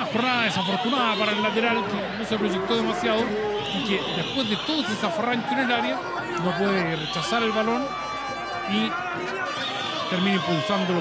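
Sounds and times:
man commentating: 0.0s - 8.0s, 8.6s - 11.0s
stadium crowd noise: 0.0s - 11.0s.

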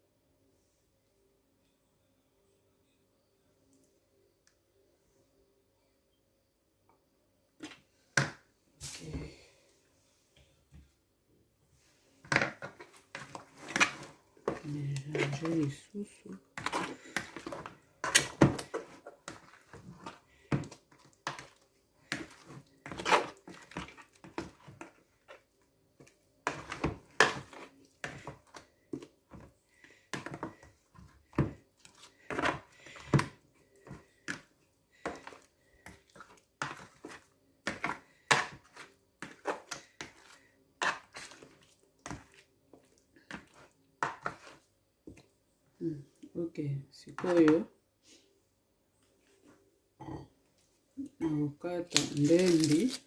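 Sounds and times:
plastic spoon scraping bowl: 12.4s - 25.4s, 26.0s - 29.5s, 30.1s - 44.7s.

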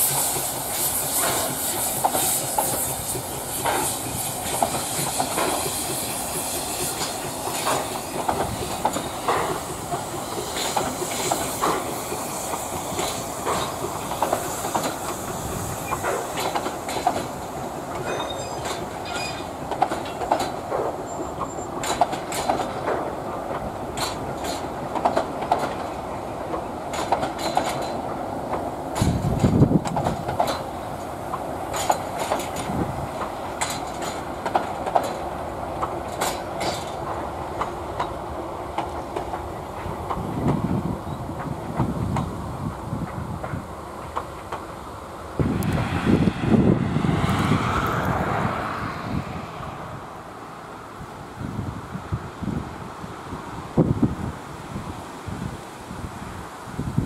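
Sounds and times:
train wheels clattering over rail joints: 0.0s - 49.1s.

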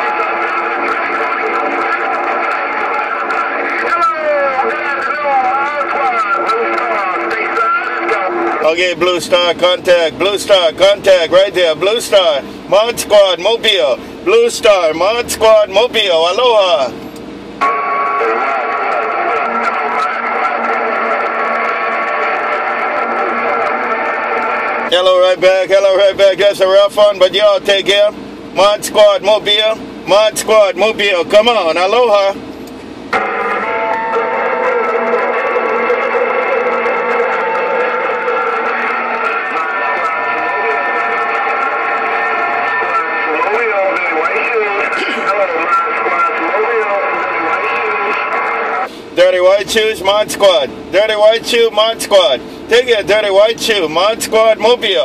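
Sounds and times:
radio static hiss: 0.0s - 12.8s, 17.7s - 32.4s, 35.8s - 53.4s
faint garbled radio voice: 0.0s - 14.0s, 17.6s - 32.4s, 34.1s - 55.0s
steady radio tones: 0.0s - 55.0s.

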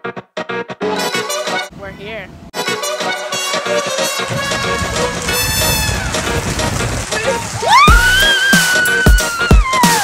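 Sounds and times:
boy screaming: 7.6s - 10.0s.

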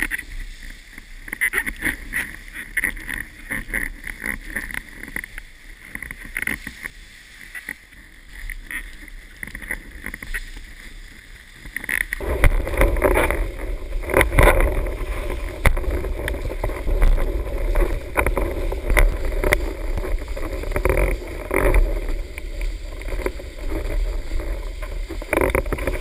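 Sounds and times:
water rushing and splashing: 0.0s - 26.0s
wind buffeting microphone: 8.6s - 26.0s.

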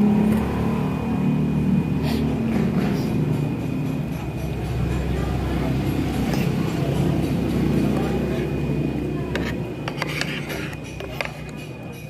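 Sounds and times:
indistinct voices: 2.0s - 12.0s.

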